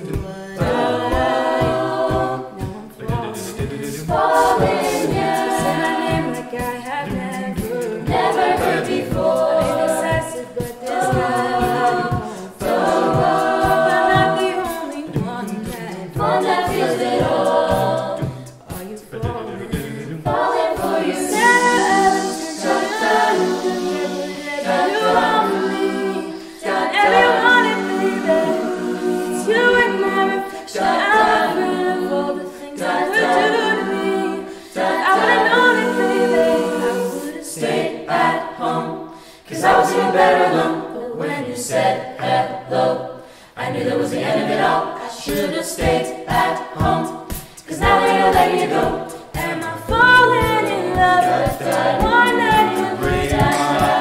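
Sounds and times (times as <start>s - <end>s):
vocal percussion thumps: 0.0s - 32.1s, 43.6s - 54.0s
vocal group singing harmony: 0.0s - 54.0s.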